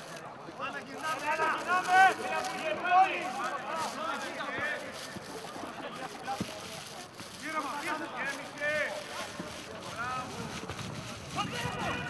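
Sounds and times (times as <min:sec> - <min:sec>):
open-air ground noise: 0:00.0 - 0:12.0.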